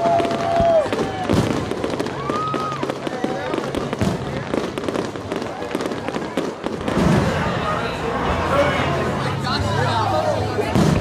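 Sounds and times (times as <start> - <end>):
firework whistle: 0.0 - 3.5
fireworks bangs and crackles: 0.0 - 11.0
people's voices: 0.0 - 11.0.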